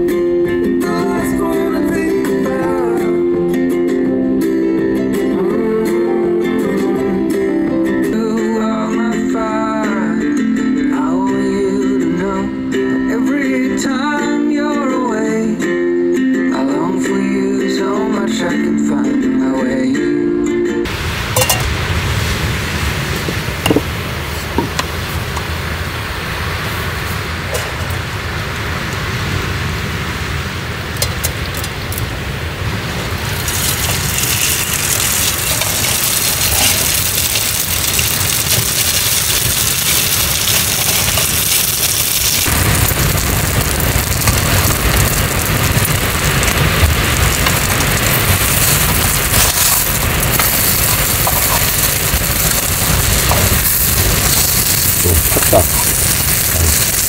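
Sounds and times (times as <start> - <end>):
food sizzling in a frying pan: 20.9 - 22.5, 32.6 - 57.0
gas burner hissing: 20.9 - 57.0.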